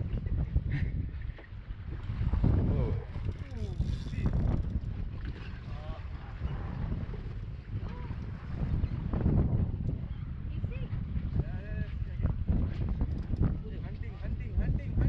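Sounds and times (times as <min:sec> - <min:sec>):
boat noise: 0:00.0 - 0:11.1
sea: 0:00.0 - 0:15.0
wind buffeting microphone: 0:00.0 - 0:15.0.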